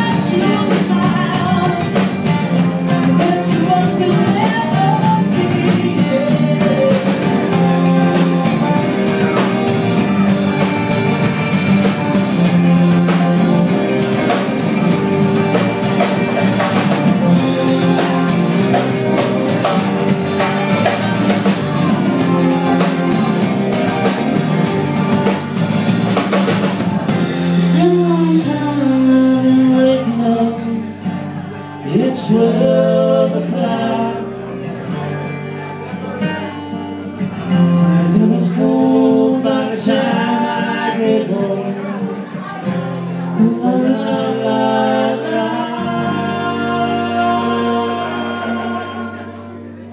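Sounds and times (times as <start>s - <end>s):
man singing: 0.0s - 10.7s, 12.4s - 25.0s, 27.4s - 35.0s, 37.3s - 49.9s
drum kit beat: 0.0s - 29.1s
bass guitar: 0.0s - 49.9s
strummed acoustic guitar: 0.0s - 49.9s.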